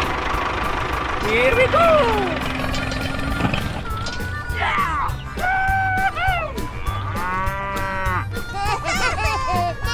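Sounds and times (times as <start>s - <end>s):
cow mooing: 6.7s - 8.4s.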